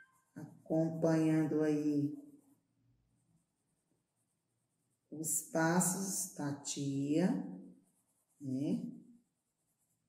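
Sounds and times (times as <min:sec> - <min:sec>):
colored pencil scratching on paper: 0:00.0 - 0:10.0.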